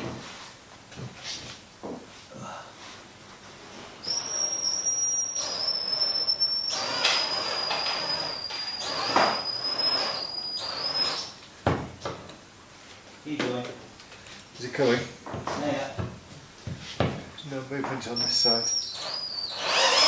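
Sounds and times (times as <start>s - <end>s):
cordless drill motor whine: 4.0s - 11.4s, 18.2s - 20.0s.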